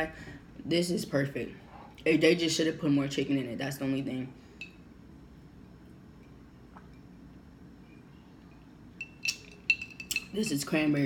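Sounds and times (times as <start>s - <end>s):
ice cubes clinking in glass jar: 9.0s - 10.6s.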